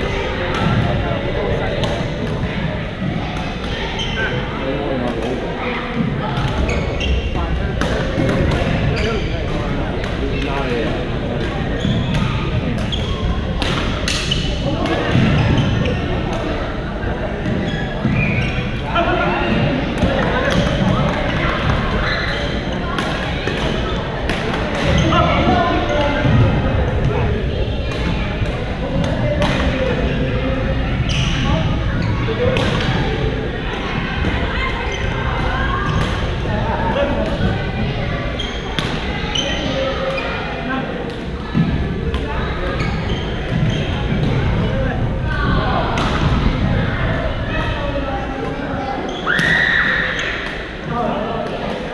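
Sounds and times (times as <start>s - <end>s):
chatter of players: 0.0s - 51.9s
sneakers squeaking on court floor: 3.1s - 4.5s, 6.4s - 9.6s, 11.4s - 16.3s, 17.4s - 18.9s, 19.9s - 26.4s, 31.0s - 33.2s, 37.2s - 40.5s, 41.5s - 44.7s, 48.8s - 50.8s.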